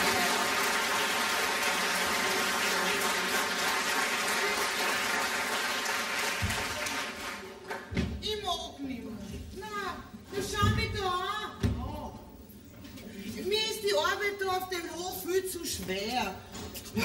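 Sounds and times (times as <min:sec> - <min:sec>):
audience applauding: 0:00.0 - 0:07.9.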